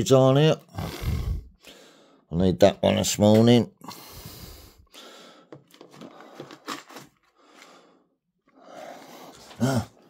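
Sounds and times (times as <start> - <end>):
cardboard boxes rustling: 5.7 - 7.3.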